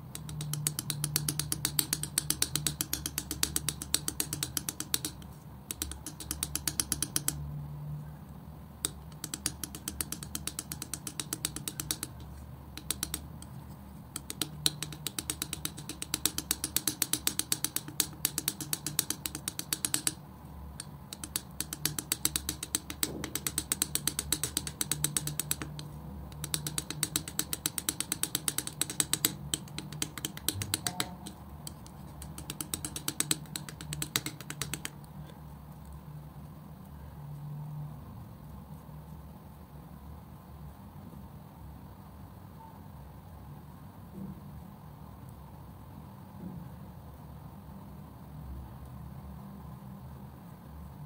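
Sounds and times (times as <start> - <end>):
palette knife smacking wet paint: 0.2 - 7.4, 8.9 - 20.2, 20.8 - 35.0.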